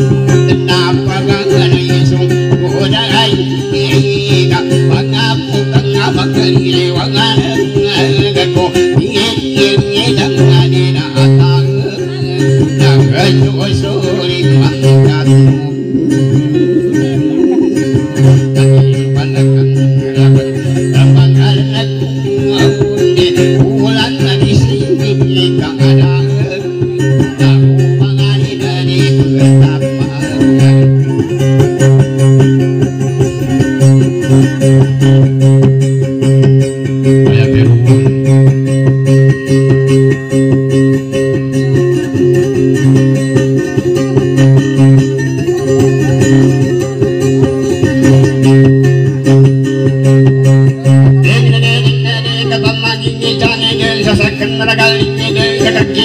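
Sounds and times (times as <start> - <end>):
plucked acoustic guitar tune: 0.0 - 56.0
low droning note: 37.2 - 40.0.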